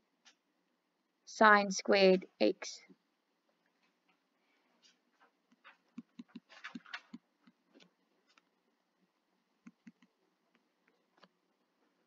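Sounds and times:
stylus tapping tablet screen: 3.6 - 8.6, 9.6 - 11.5.

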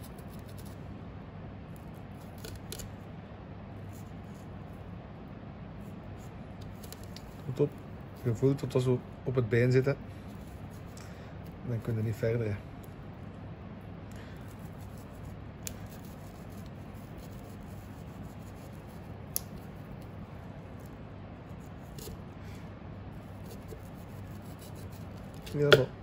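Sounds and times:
low background hum: 0.0 - 26.0
knife scraping meat: 1.8 - 2.9, 14.4 - 20.1, 20.8 - 22.2, 23.2 - 25.8.

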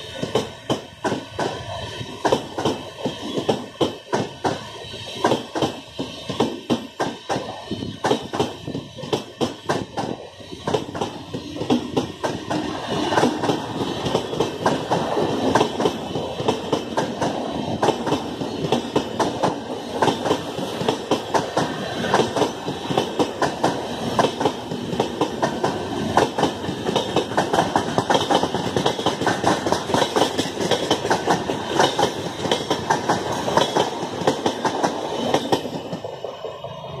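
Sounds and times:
train wheels clattering over rail joints: 0.1 - 36.1.

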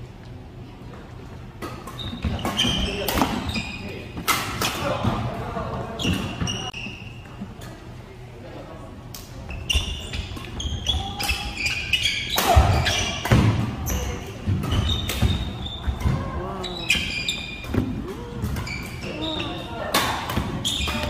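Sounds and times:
shoe squeaks: 1.9 - 4.2, 6.0 - 7.4, 9.5 - 17.8, 18.6 - 19.9, 20.6 - 21.0.

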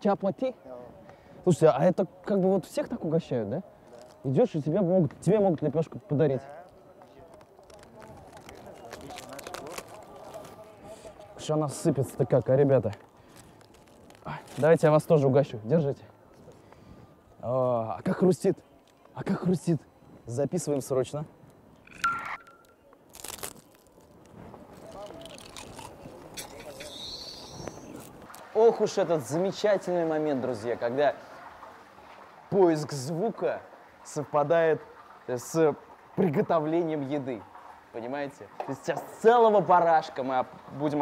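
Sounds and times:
faint voices: 0.0 - 21.4, 22.7 - 35.5
flatbread crackling: 6.2 - 15.6, 22.5 - 34.1
brief ringing tone: 21.9 - 22.8.

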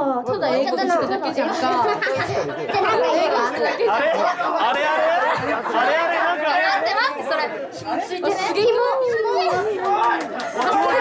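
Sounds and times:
girls talking through microphones: 0.0 - 11.0.

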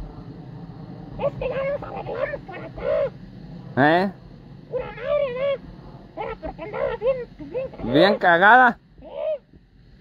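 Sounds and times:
person crying out with a whine: 1.2 - 3.2, 4.7 - 5.6, 6.2 - 8.4, 9.0 - 9.5.

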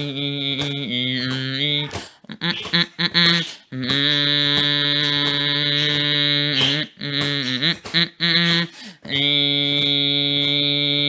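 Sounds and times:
person humming a steady note: 0.0 - 11.0.

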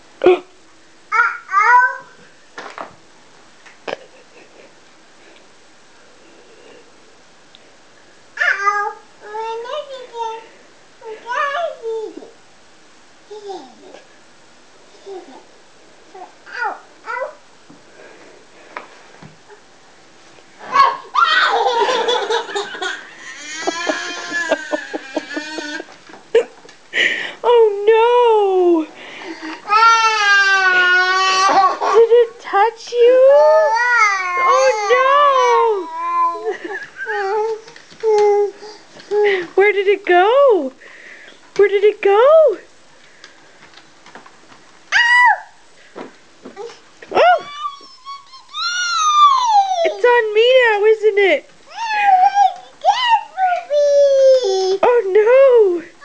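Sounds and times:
toddler squealing and giggling: 20.6 - 22.1, 23.2 - 25.9, 33.4 - 38.6, 46.6 - 50.0, 51.7 - 54.8.

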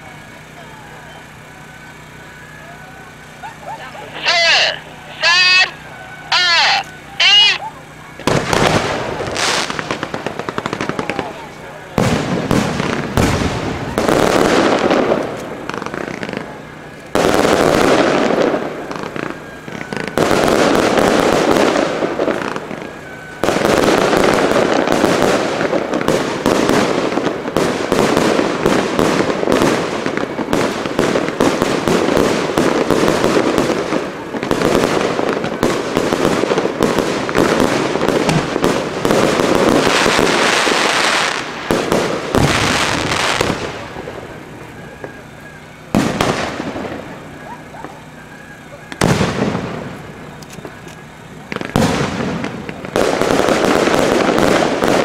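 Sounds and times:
firework shells bursting: 1.3 - 55.0.

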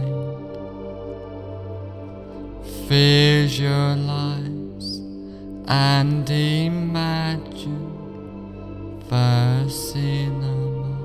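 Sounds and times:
low voice chanting: 0.0 - 0.6, 2.6 - 11.0.

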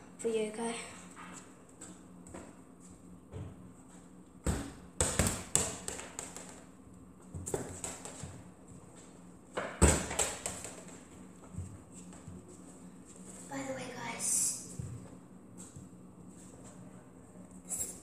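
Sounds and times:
football thudding and bouncing: 4.4 - 6.6, 9.5 - 10.9.

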